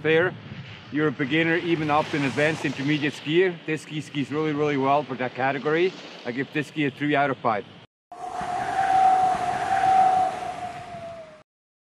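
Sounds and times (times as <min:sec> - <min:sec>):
whooshing with whistle-like tone: 0:08.1 - 0:11.4.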